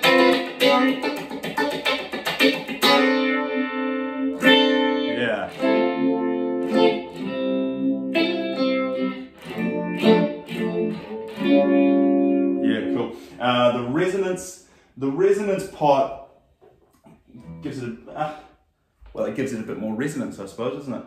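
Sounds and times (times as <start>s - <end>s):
electric guitar with phaser: 0.0s - 13.4s.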